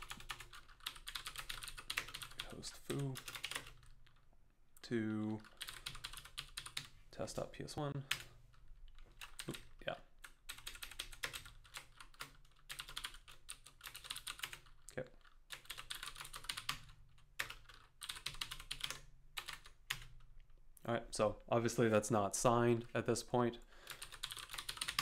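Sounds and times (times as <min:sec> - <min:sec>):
computer keyboard typing: 0:00.0 - 0:04.2, 0:05.3 - 0:06.9, 0:08.0 - 0:20.2, 0:23.9 - 0:25.0.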